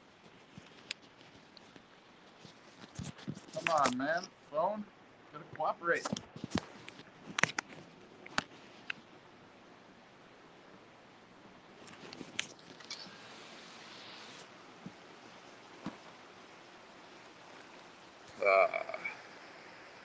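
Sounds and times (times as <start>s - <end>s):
low steady hiss: 0.0s - 20.0s
phone being handled: 6.0s - 9.0s.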